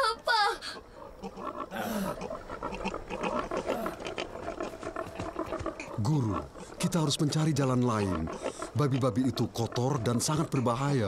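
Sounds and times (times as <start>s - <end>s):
pigs grunting and squealing: 0.7s - 11.0s.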